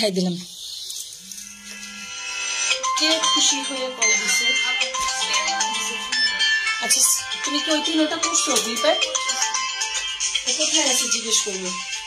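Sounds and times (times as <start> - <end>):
mobile phone ringtone: 1.3 - 12.0.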